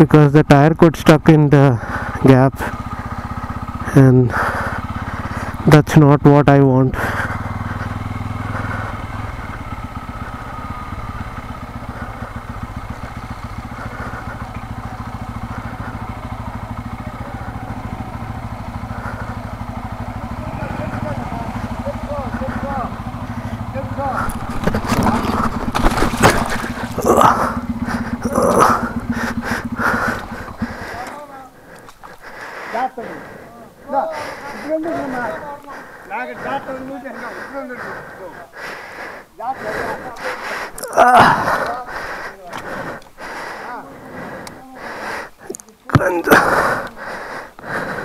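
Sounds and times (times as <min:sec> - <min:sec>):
motorcycle engine running: 0:00.0 - 0:48.0
motorcycle crashing knocks and scraping: 0:24.2 - 0:29.1.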